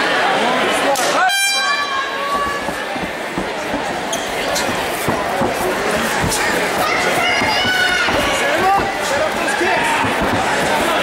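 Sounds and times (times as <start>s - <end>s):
crowd voices in hall: 0.0s - 11.0s.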